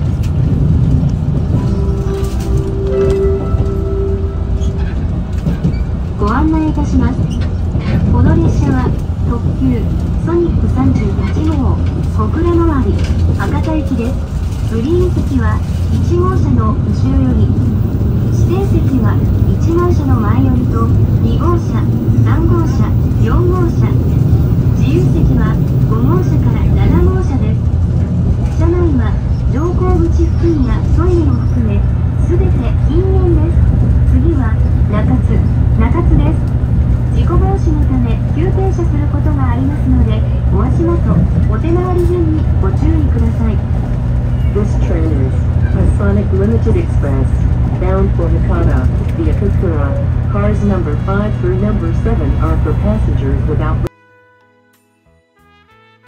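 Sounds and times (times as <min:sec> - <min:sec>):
moving train rumble: 0:00.0 - 0:53.9
on-board announcement: 0:01.3 - 0:54.0
indistinct voices talking: 0:14.8 - 0:27.7.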